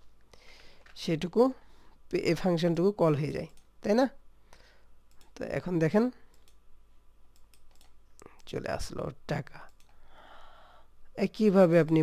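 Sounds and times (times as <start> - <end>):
person speaking: 0.8 - 4.3, 5.2 - 6.4, 8.1 - 9.9, 11.1 - 12.0
computer clicks: 5.0 - 5.6, 6.2 - 6.6, 7.3 - 8.6, 9.6 - 10.0.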